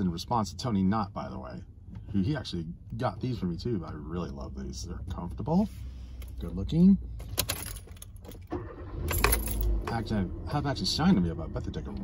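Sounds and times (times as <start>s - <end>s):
keys jangling: 7.2s - 8.5s, 9.1s - 9.9s.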